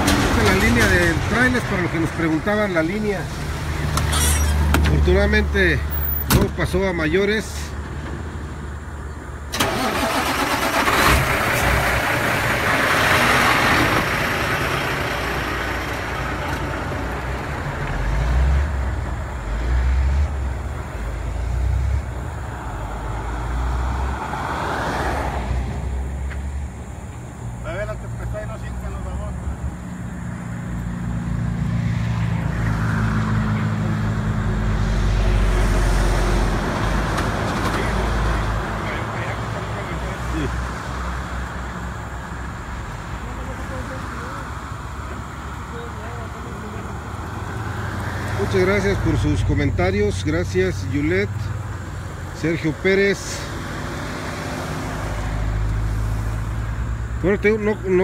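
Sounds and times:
truck and car engines: 0:00.0 - 0:58.0.

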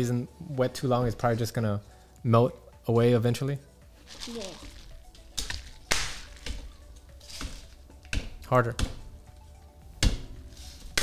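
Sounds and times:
straw popping through plastic film: 0:04.0 - 0:08.4.

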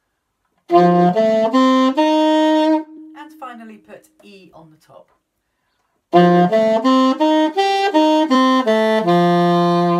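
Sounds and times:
alto saxophone arpeggio: 0:00.7 - 0:03.4, 0:06.1 - 0:09.9.

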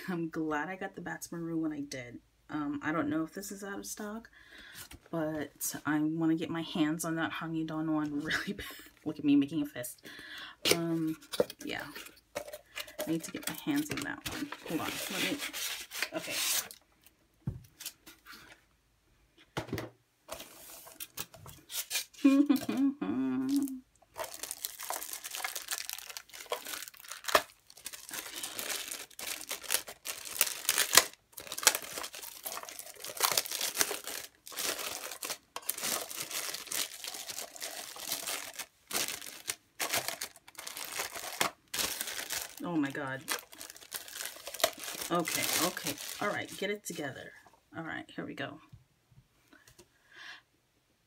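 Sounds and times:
plastic film crinkling and tearing: 0:12.9 - 0:16.8, 0:23.5 - 0:46.9.

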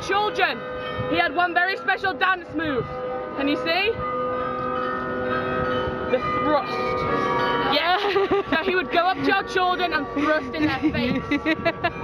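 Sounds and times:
glockenspiel bells ringing: 0:00.0 - 0:12.0.

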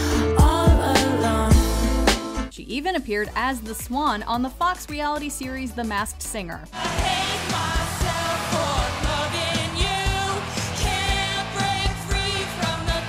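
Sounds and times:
backing track with steady beat: 0:00.0 - 0:02.6, 0:03.4 - 0:13.0
woman singing pop song: 0:00.0 - 0:13.0.

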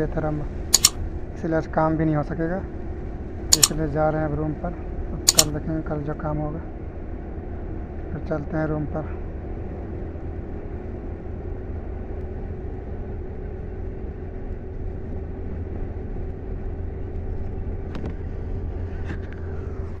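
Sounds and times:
vehicle engine and road rumble: 0:00.0 - 0:20.0
brief clicks: 0:00.8 - 0:01.0, 0:03.5 - 0:03.8, 0:05.3 - 0:05.6.

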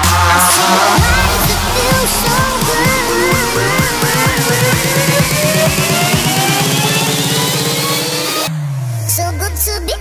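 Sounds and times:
synth rising in pitch: 0:00.7 - 0:08.5
fast drum roll: 0:01.0 - 0:07.9
low tone falling in pitch: 0:01.0 - 0:07.9.

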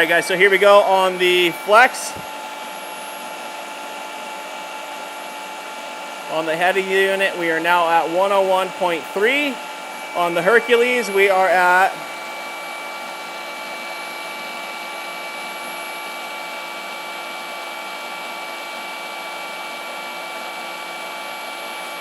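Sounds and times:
polisher motors humming and whining: 0:00.0 - 0:22.0.

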